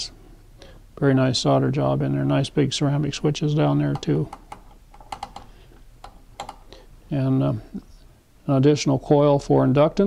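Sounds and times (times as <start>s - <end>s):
low steady background noise: 0.0s - 10.0s.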